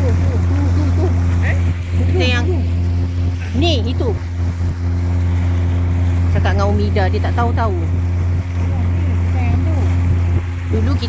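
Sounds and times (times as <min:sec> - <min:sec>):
boat engine droning: 0:00.0 - 0:11.0
water noise: 0:00.0 - 0:11.0.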